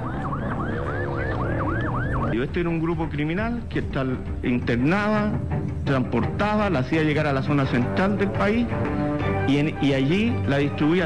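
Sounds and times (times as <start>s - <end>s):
siren yelping: 0.0s - 2.6s.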